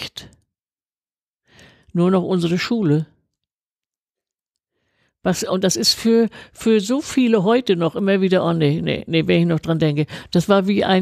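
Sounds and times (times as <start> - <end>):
person speaking: 0.0 - 0.5, 1.7 - 3.5, 5.2 - 11.0
faint breath: 1.4 - 1.9, 4.7 - 5.2.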